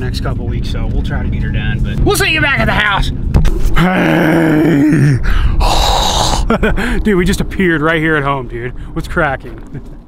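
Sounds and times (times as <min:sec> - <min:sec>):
man's groan-like tone: 0:03.8 - 0:06.5.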